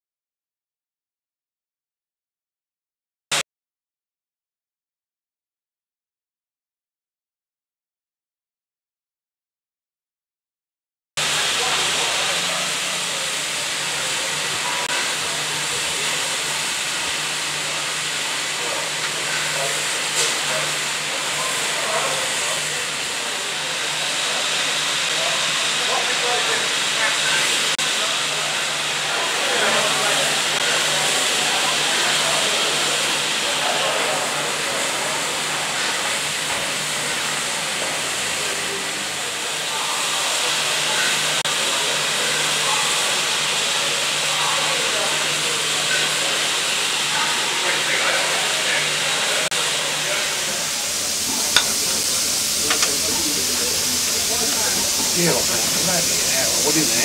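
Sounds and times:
steam hissing: 0:11.2 - 0:57.0.

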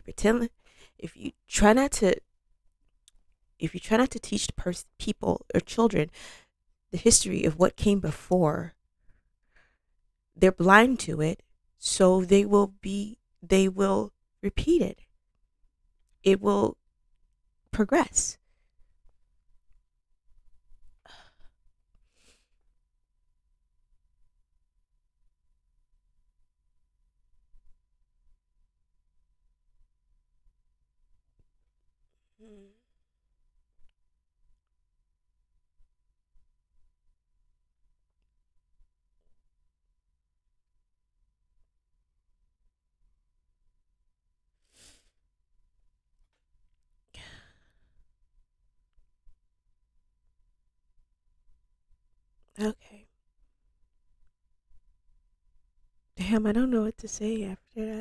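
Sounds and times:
woman sighing: 0:21.0 - 0:21.5, 0:32.4 - 0:32.8.

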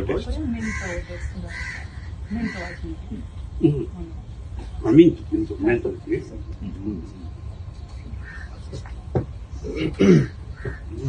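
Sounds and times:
low talk: 0:00.0 - 0:11.0
bird hoarse calls: 0:00.6 - 0:03.9, 0:06.5 - 0:11.0.

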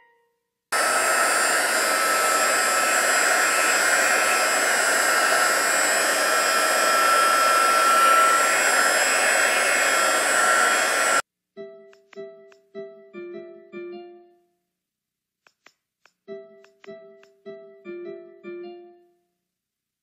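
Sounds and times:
heat gun blowing air: 0:00.8 - 0:11.2.

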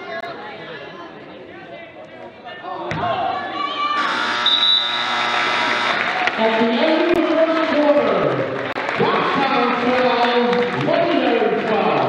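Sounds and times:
crowd voices: 0:00.0 - 0:12.0
crowd cheering: 0:03.0 - 0:12.0
scoreboard buzzer: 0:04.0 - 0:06.2.

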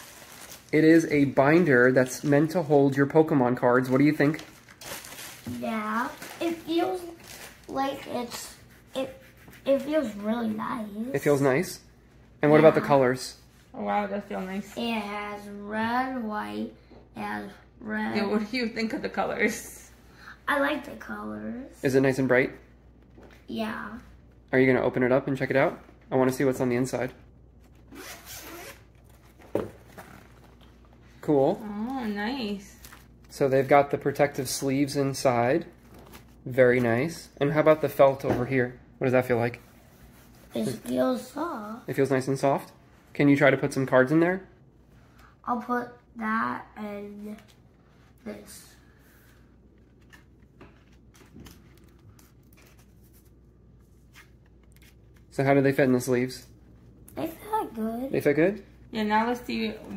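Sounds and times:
zipper being pulled open: 0:27.9 - 0:28.8.

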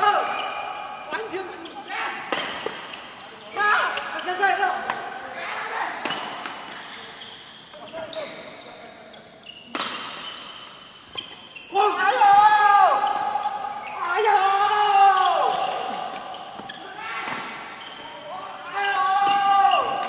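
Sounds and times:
racket hitting shuttlecock: 0:09.7 - 0:10.6
people shouting high-pitched calls: 0:11.7 - 0:16.1, 0:18.2 - 0:20.0.

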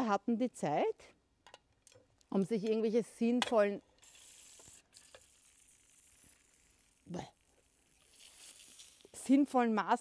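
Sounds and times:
gas hissing from a tin: 0:03.9 - 0:09.8.

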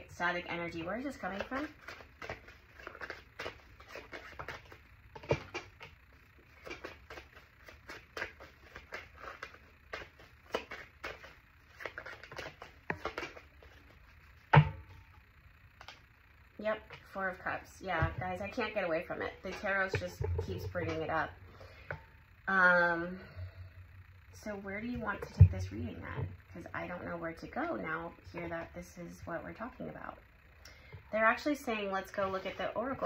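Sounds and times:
cards being shuffled: 0:01.0 - 0:05.9, 0:06.5 - 0:14.4.

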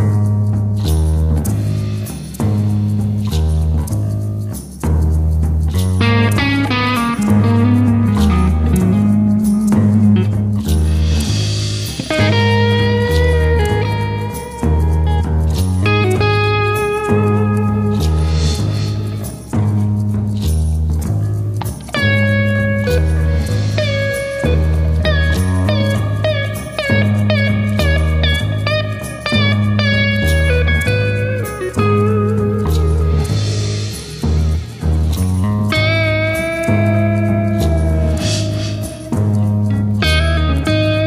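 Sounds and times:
bass guitar: 0:00.0 - 0:41.0
drums: 0:00.0 - 0:41.0
electric guitar: 0:00.0 - 0:41.0.

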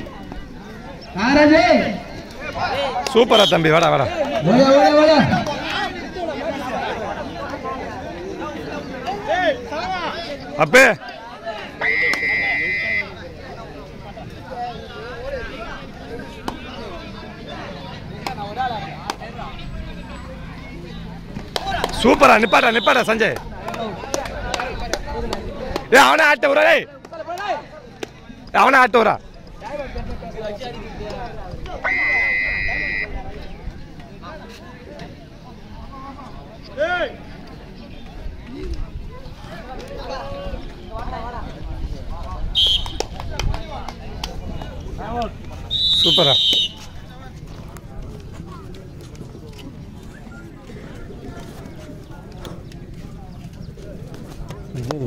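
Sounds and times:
people talking: 0:00.0 - 0:55.0
faint background voices: 0:05.3 - 0:22.1, 0:26.8 - 0:55.0
sharp hand claps: 0:21.4 - 0:22.1, 0:23.2 - 0:25.9, 0:42.6 - 0:45.3.

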